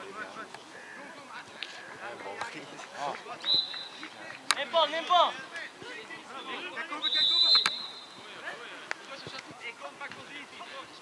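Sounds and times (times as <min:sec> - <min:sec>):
referee's whistle: 0:03.4 - 0:04.0, 0:06.9 - 0:08.2.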